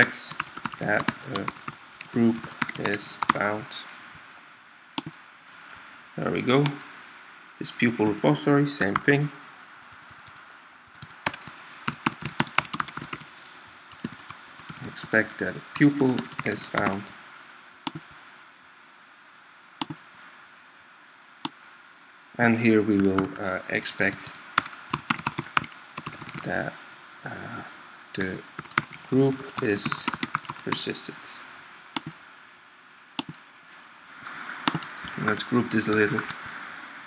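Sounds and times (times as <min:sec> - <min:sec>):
computer keyboard keystrokes: 0:00.0 - 0:03.4, 0:05.0 - 0:05.8, 0:08.8 - 0:09.1, 0:09.8 - 0:17.0, 0:17.9 - 0:18.1, 0:19.8 - 0:20.0, 0:23.0 - 0:23.5, 0:24.6 - 0:26.5, 0:28.6 - 0:30.8, 0:33.2 - 0:33.4, 0:34.7 - 0:36.6
faint steady hiss: 0:00.0 - 0:37.0
keyboard keystroke clicks: 0:05.0 - 0:05.7, 0:17.9 - 0:18.1, 0:19.8 - 0:20.0, 0:32.0 - 0:32.2, 0:33.2 - 0:33.4.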